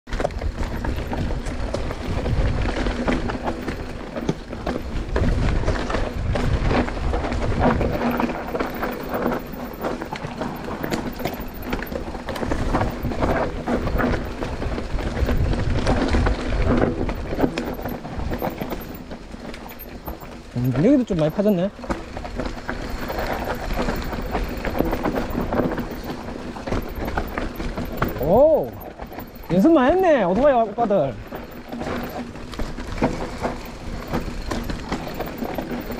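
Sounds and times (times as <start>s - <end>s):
wind rumble on microphone: 0.1s - 19.0s
bike rattling over bumps: 0.1s - 35.9s
bike tyres rolling over dirt: 0.1s - 35.9s.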